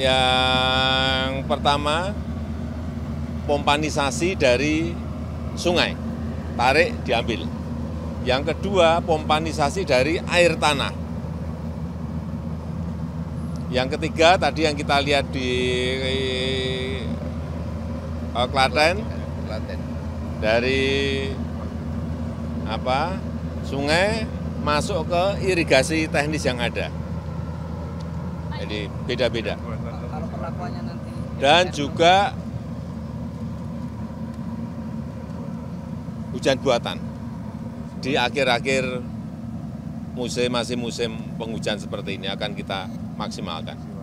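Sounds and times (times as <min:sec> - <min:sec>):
engine running steadily: 0:00.0 - 0:44.0.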